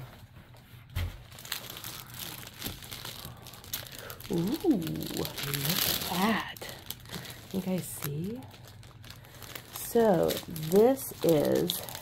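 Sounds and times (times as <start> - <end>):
plastic packaging crinkling: 1.2 - 12.0.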